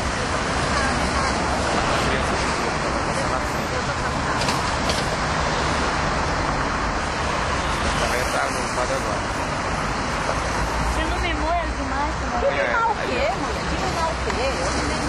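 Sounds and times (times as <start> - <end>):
city road traffic: 0.0 - 15.0.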